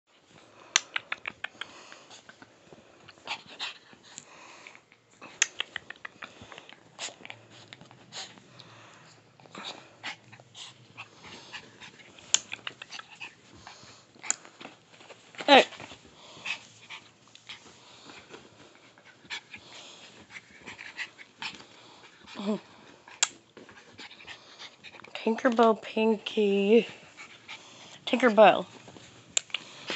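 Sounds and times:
plush toys rustling: 13.4s - 21.7s.

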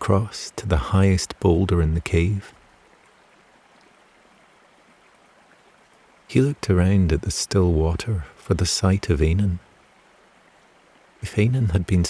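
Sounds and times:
gently flowing stream: 0.0s - 12.0s.

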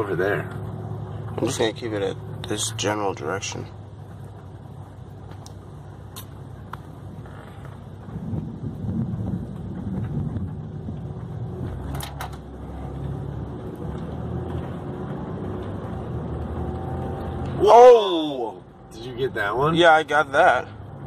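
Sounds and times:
car engine and tyre rumble: 0.0s - 21.0s.

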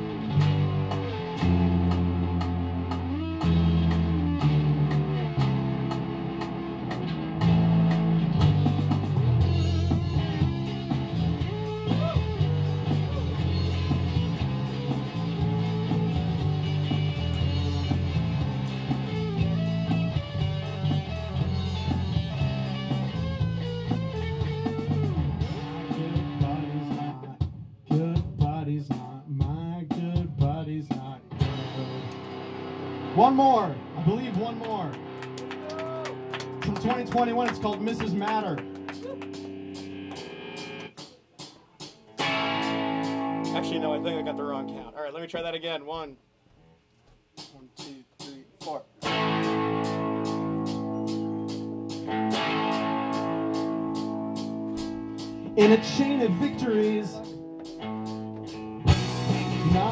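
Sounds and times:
electric guitar playing: 0.0s - 27.3s, 31.2s - 41.0s, 42.0s - 44.9s, 49.0s - 59.9s
rock backing track with bass and drums: 0.0s - 44.9s, 47.2s - 59.9s.

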